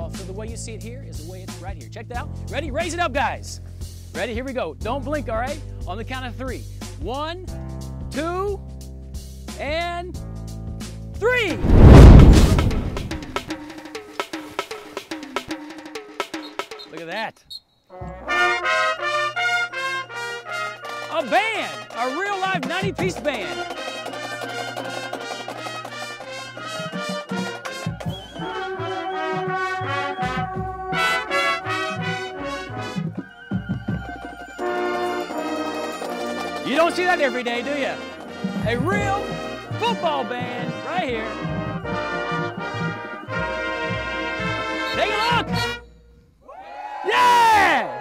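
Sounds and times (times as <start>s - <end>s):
drum line beat: 11.6s - 17.1s, 20.9s - 45.8s
brass instruments playing: 18.0s - 46.1s
group shouting a cheer: 46.5s - 48.0s.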